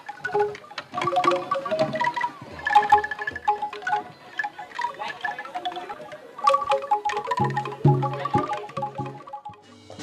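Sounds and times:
angklung melody: 0.0s - 10.0s.

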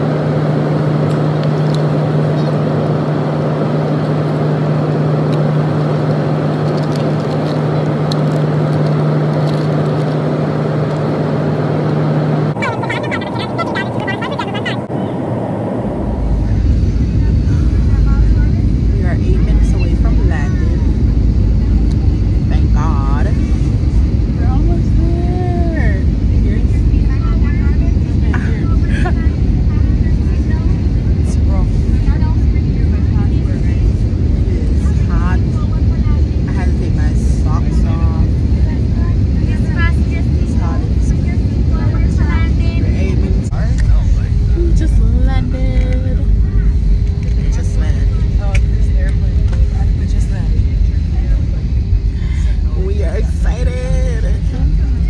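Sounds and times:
airliner cabin rumble: 0.0s - 55.0s
steady higher hum: 0.0s - 55.0s
faint muffled voices: 15.9s - 55.0s.

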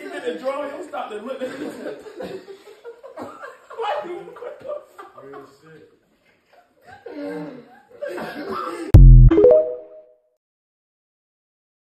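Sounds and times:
men laughing: 1.4s - 5.6s, 6.7s - 8.9s
outro jingle: 9.0s - 10.0s.

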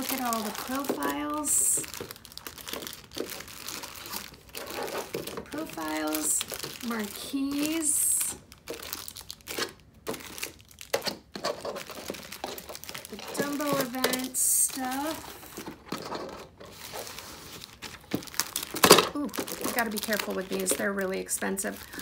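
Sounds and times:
plastic sleeves crinkling: 0.0s - 22.0s.

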